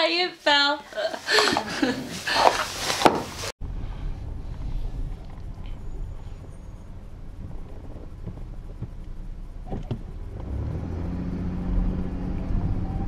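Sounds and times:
car engine rumble: 1.8s - 13.0s.

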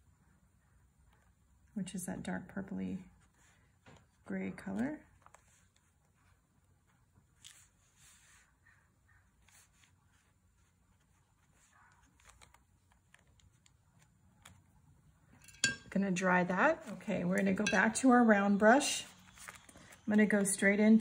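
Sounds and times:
paintbrush swishing on paper: 5.1s - 12.5s.

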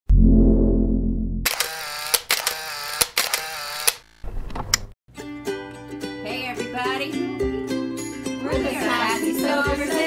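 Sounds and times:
camera shutter clicks: 1.5s - 4.0s.

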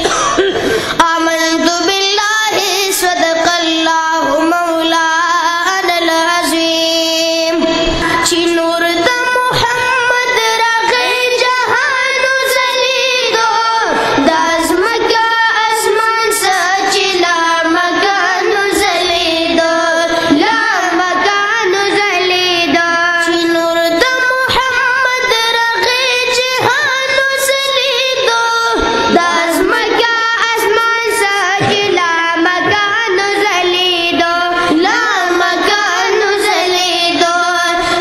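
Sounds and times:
child singing into a microphone: 0.0s - 38.0s.

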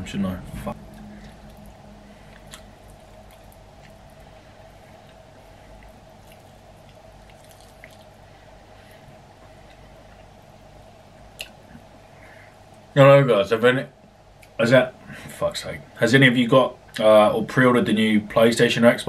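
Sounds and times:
steady low hum: 0.0s - 19.0s
wet chewing: 0.8s - 8.4s
soft mouth clicks: 11.4s - 11.8s.

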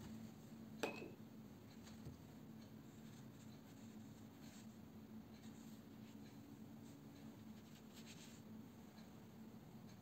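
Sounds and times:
paintbrush strokes on paper: 2.8s - 9.0s.

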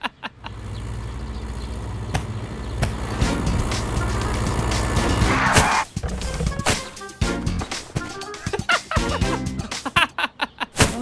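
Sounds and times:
cartoon car engine running: 0.0s - 7.0s
background music: 2.9s - 10.2s.

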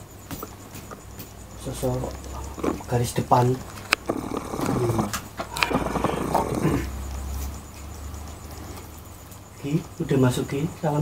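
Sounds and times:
sharp clicks: 2.0s - 7.9s
man growling and grunting: 4.0s - 7.0s.

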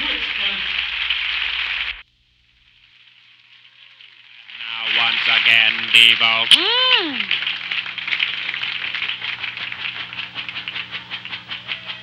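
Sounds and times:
audience applauding and cheering: 0.0s - 2.0s, 4.5s - 12.0s
man talking: 4.6s - 6.6s.

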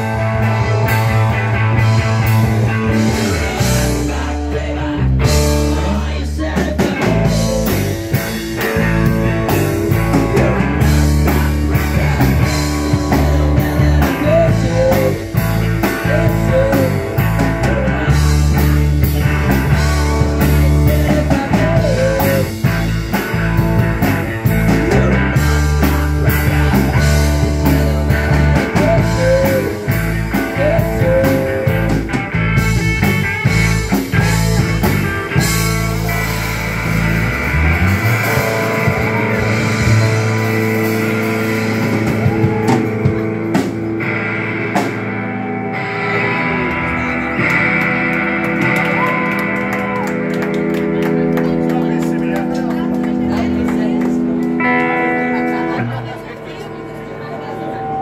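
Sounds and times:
electric guitars: 0.0s - 58.0s.

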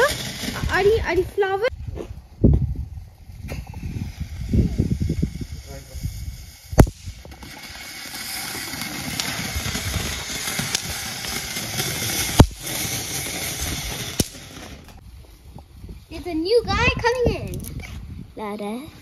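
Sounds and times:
hiss of burning fireworks: 0.0s - 1.7s, 2.8s - 16.1s
firecracker bangs: 3.5s - 14.8s.

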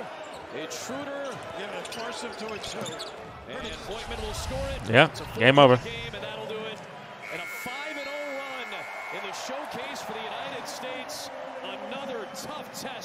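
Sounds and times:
arena crowd: 0.0s - 13.0s
sports commentary: 0.5s - 13.0s
buzzer: 7.2s - 9.5s.

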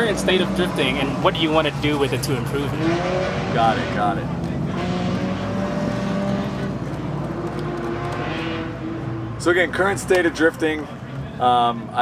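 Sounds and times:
car engine at high revs: 0.0s - 10.5s.

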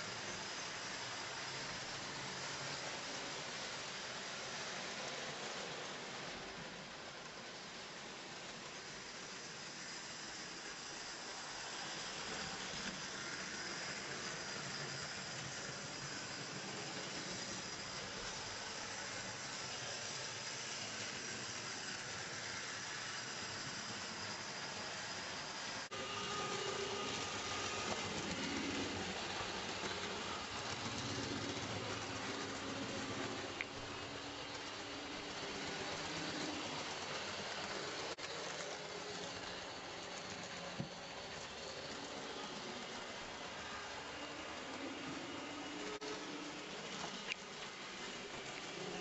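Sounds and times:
model train wheels rolling on rails: 0.0s - 49.0s.

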